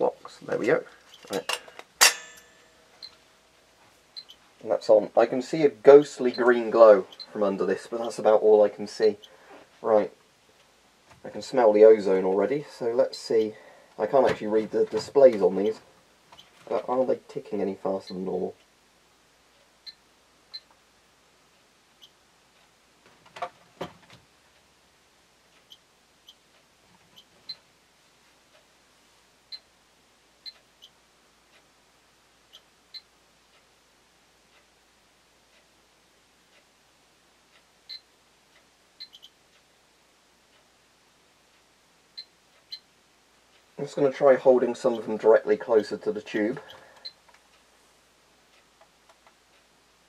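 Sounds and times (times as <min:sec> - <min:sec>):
geiger counters clicking and beeping: 0:04.1 - 0:10.6, 0:11.4 - 0:18.7, 0:19.6 - 0:20.8, 0:22.0 - 0:23.7, 0:25.4 - 0:27.7, 0:29.4 - 0:29.7, 0:30.4 - 0:31.7, 0:32.4 - 0:33.8, 0:37.4 - 0:39.8, 0:41.6 - 0:43.0, 0:43.6 - 0:47.7.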